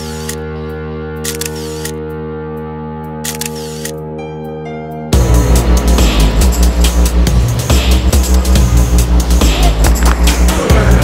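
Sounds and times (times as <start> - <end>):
held music chord: 0.0 - 11.0
camera shutter clicks: 1.2 - 2.0, 3.3 - 4.0.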